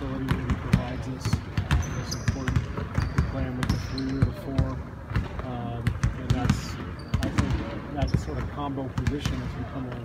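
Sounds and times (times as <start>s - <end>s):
basketballs bouncing on court: 0.0s - 10.0s.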